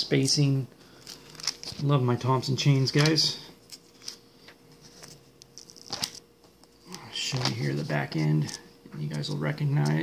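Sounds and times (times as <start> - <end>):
paper pages rustling: 0.9 - 1.9, 2.8 - 6.2, 6.9 - 9.3.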